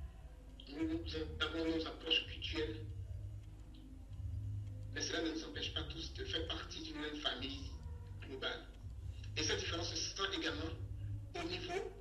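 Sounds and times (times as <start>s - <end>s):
steady low hum: 0.0s - 12.0s
man speaking over a call: 0.6s - 2.9s, 5.0s - 8.8s, 9.4s - 10.8s, 11.4s - 11.9s.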